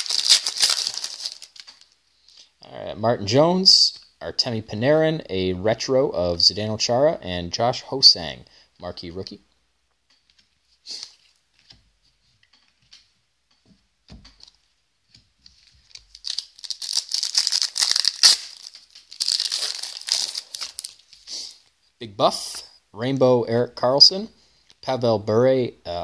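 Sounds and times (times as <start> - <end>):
foil wrapper crinkling and tearing: 0.0 - 2.0, 15.6 - 21.3.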